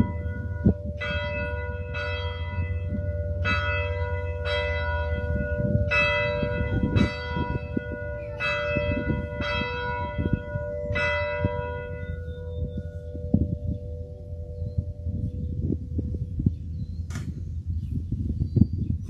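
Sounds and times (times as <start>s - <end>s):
church bell ringing: 0.0s - 16.3s.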